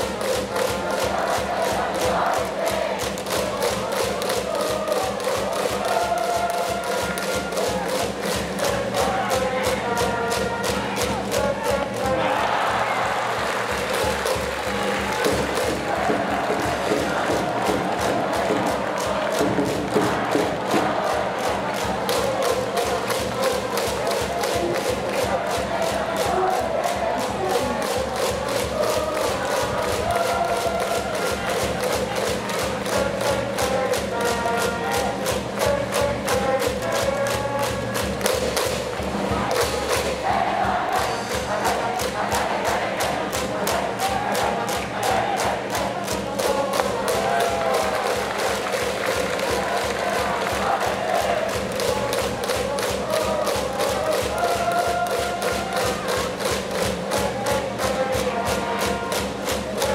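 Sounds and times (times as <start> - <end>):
crowd chanting in unison: 0.0 - 35.2, 39.0 - 59.9
drum beaten in fast rhythm: 0.0 - 59.9.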